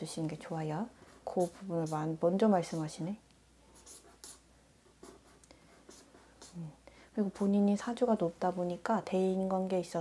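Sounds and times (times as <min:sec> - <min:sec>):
pen scratching on paper: 0:00.9 - 0:03.0, 0:03.7 - 0:07.6.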